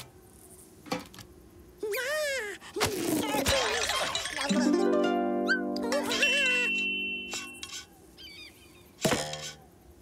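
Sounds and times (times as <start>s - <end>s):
squeaky cartoon character vocals: 3.3s - 8.6s
held musical chord: 4.6s - 7.3s
faint squeaky chirp: 5.4s - 9.8s.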